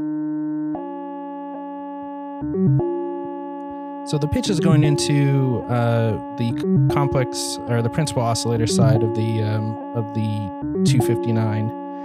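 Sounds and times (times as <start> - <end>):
synthesizer tone with pitch steps: 4.1 - 7.9.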